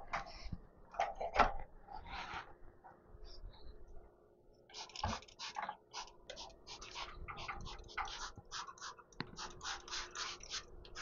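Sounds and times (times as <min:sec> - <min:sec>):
spray bottle squirting: 0:04.7 - 0:11.0.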